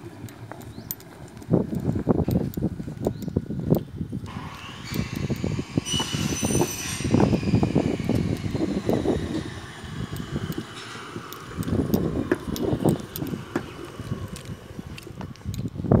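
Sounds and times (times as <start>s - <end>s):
brief high squeal: 4.4s - 7.8s.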